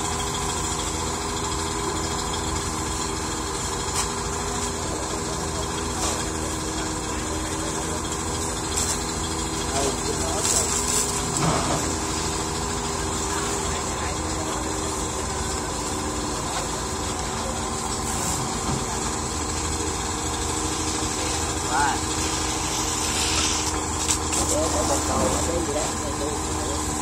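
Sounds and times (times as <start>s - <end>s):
large engine idling: 0.0s - 27.0s
faint voices: 3.1s - 27.0s.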